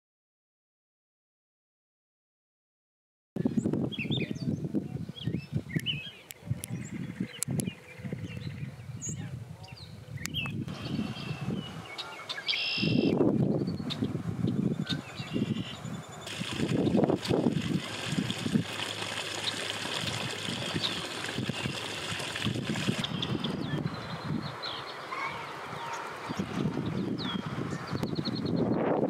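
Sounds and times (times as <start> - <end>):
small birds chirping: 3.5 - 29.0.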